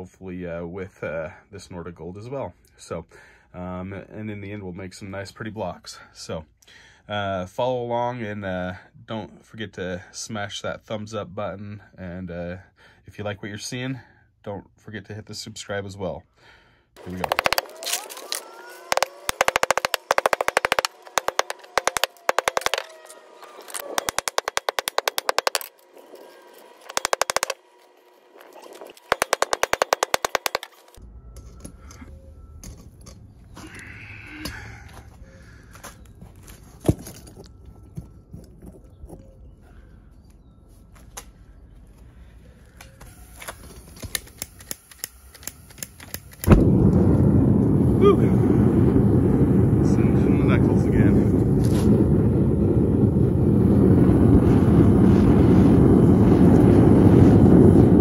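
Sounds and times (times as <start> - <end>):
gas burner rushing: 17.0 - 30.2, 43.1 - 58.0
hammer beating metal on concrete: 18.9 - 22.9, 24.0 - 25.7, 26.9 - 27.6, 29.1 - 30.7.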